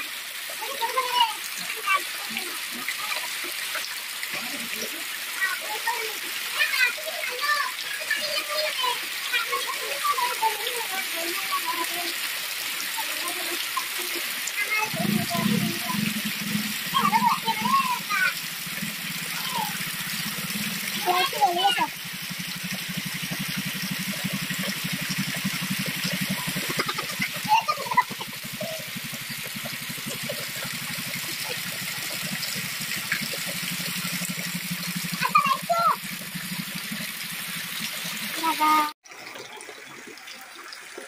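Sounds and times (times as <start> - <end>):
heavy rain on wet concrete: 0.0 - 38.9
steady low hum: 15.0 - 21.0.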